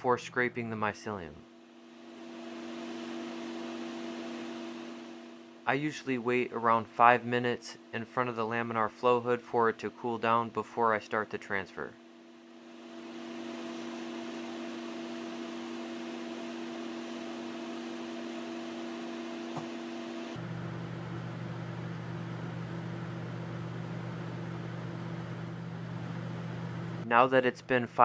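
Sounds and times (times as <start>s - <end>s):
blower fan humming: 0.1s - 27.1s.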